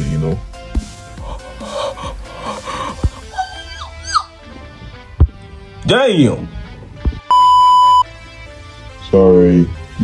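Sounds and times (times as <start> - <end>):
high-pitched censor beep: 7.3 - 8.1.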